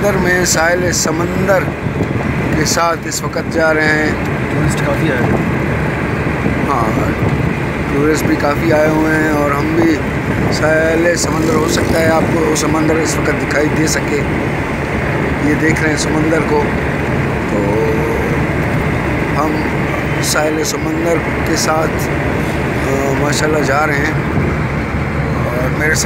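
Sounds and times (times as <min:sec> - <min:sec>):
car road and engine noise: 0:00.0 - 0:26.0
person talking: 0:07.9 - 0:14.3, 0:17.4 - 0:18.5, 0:19.4 - 0:24.2.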